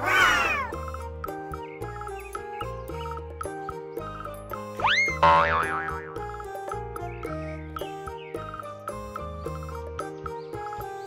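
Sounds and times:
bouncy children's music: 0:00.0 - 0:11.0
cartoon boing: 0:04.8 - 0:06.4.

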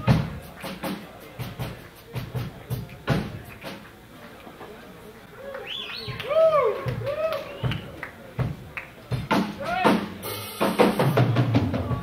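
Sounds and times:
drum hits: 0:00.0 - 0:03.8, 0:06.8 - 0:12.0
live band playing: 0:00.0 - 0:04.1, 0:06.0 - 0:12.0.

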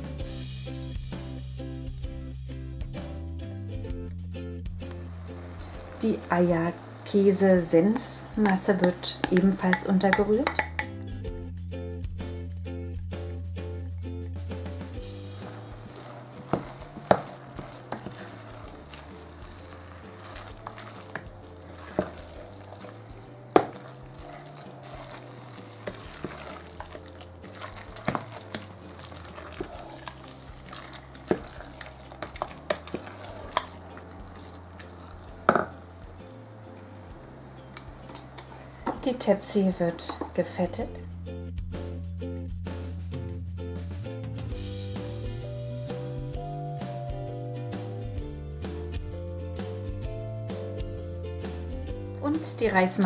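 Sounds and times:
wooden spoon stirring thick mixture: 0:04.9 - 0:10.9, 0:15.0 - 0:40.9
spoon knocking against pot: 0:08.4 - 0:10.9.

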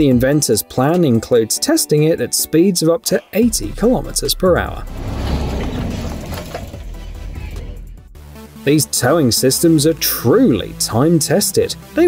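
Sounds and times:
vehicle engine rumbling: 0:03.6 - 0:08.2.

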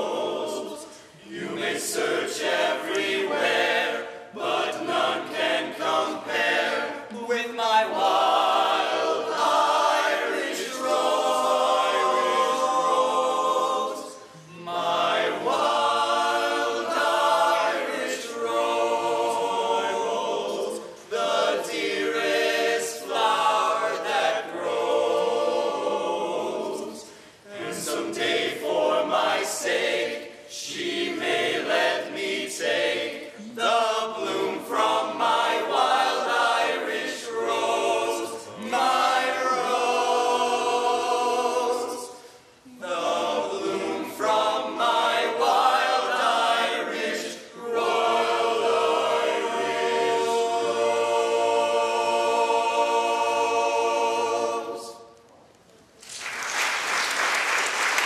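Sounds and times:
male barbershop chorus singing: 0:00.0 - 0:42.2, 0:42.8 - 0:55.0.

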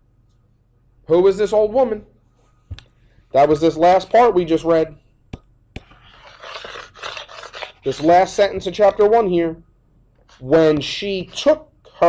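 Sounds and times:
stylus scratching on drawing tablet: 0:05.8 - 0:09.0.

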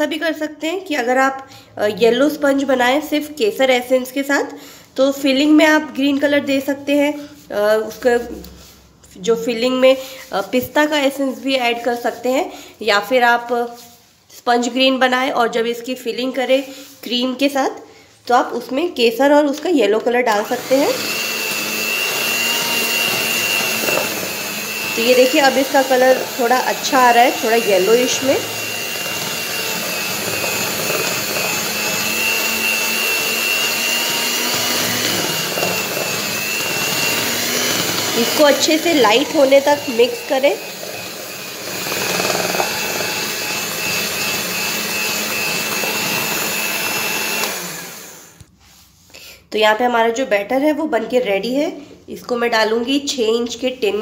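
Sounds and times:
electric hand mixer whining: 0:20.3 - 0:48.4.

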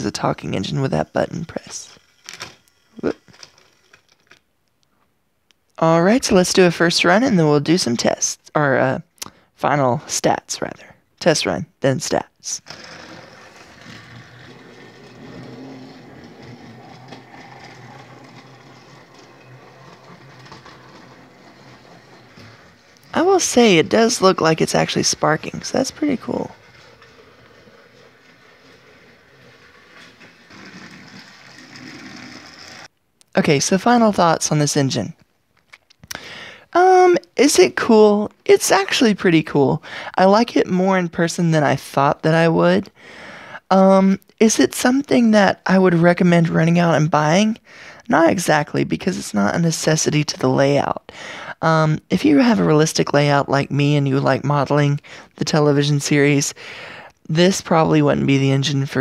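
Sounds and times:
toy train motor whirring: 0:00.1 - 0:04.4, 0:12.5 - 0:32.9.

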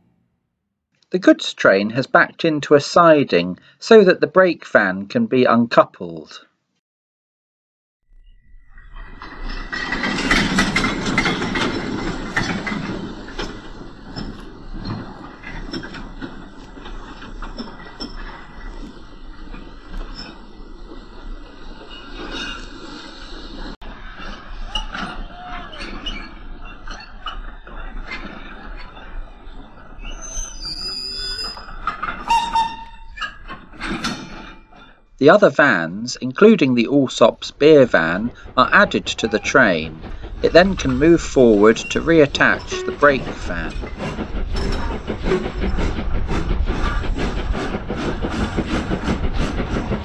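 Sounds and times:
high wheel squeal: 0:08.4 - 0:35.0, 0:36.4 - 0:47.7
freight train rumbling on track: 0:08.8 - 0:50.0
train wagons clanking: 0:08.8 - 0:50.0.

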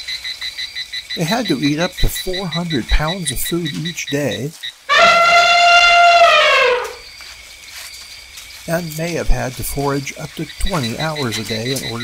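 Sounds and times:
faint background noise: 0:00.0 - 0:12.0
elephant trumpeting: 0:04.9 - 0:07.1.

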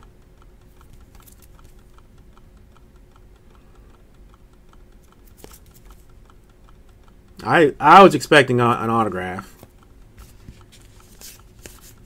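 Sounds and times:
low steady hum: 0:00.0 - 0:12.0
rapid light clicking: 0:00.0 - 0:12.0.

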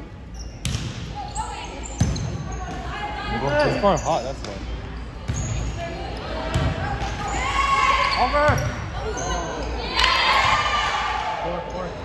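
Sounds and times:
voices echoing in gym: 0:00.0 - 0:12.0
shoe squeak on court: 0:00.3 - 0:00.7, 0:05.3 - 0:05.8.

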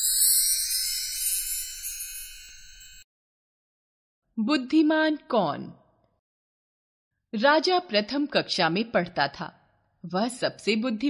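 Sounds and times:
high bell-like chime: 0:00.0 - 0:03.1.

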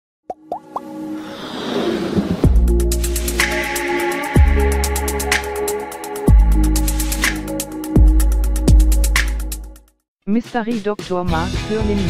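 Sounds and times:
pops gliding up in pitch: 0:00.3 - 0:01.0
music build-up: 0:00.6 - 0:09.6.

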